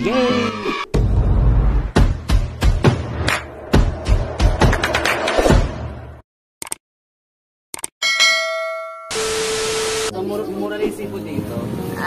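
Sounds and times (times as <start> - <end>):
notification bell chime: 8.0 - 9.5.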